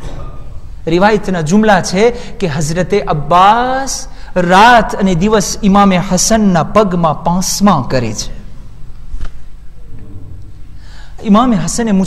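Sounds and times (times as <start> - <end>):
steady low hum: 0.0 - 12.0
sharp intake of breath: 10.6 - 11.2.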